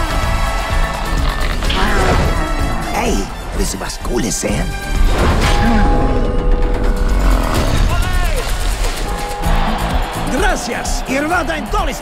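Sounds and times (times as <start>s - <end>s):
film trailer music: 0.0s - 12.0s.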